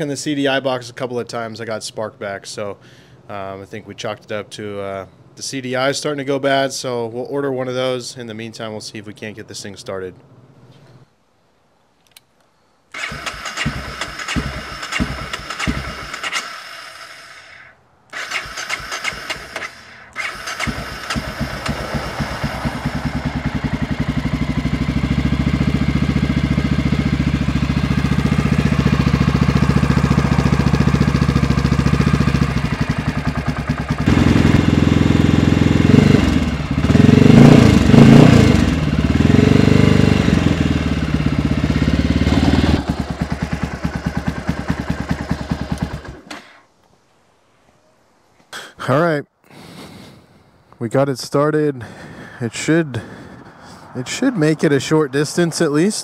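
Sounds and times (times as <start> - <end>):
motorcycle engine idling unevenly: 13.0 - 16.2, 19.7 - 46.3
electric starter cranking: 13.0 - 25.3, 28.0 - 35.6, 42.2 - 46.6
engine revving: 13.0 - 46.6.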